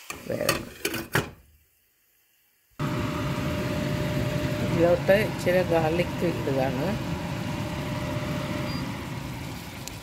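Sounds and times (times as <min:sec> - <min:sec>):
kitchen machinery hum: 0:02.8 - 0:10.0.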